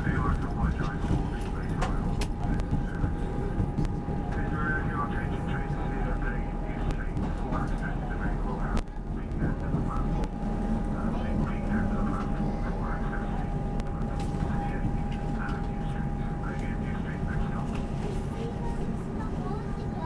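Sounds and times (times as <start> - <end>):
constant whine: 0.0 - 20.0
faint passenger voices: 0.0 - 20.0
train wheels rumbling on rail: 0.0 - 20.0.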